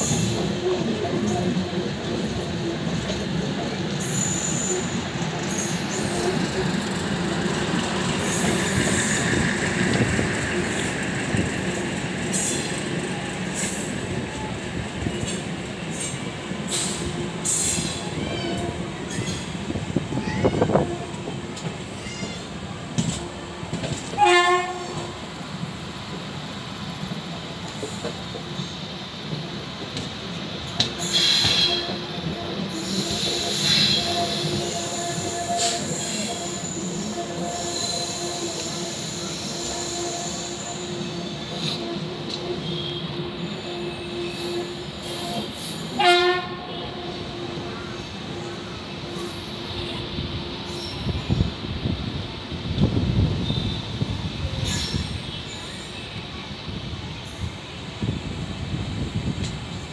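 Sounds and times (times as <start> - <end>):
train wheels rolling on track: 0.0 - 59.9
train horn blast: 23.0 - 25.2, 30.8 - 48.0
high wheel squeals: 32.7 - 41.8.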